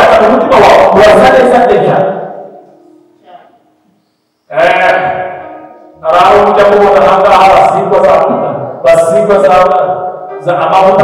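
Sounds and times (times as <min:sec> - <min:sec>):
man preaching: 0:00.0 - 0:02.5, 0:04.5 - 0:11.0.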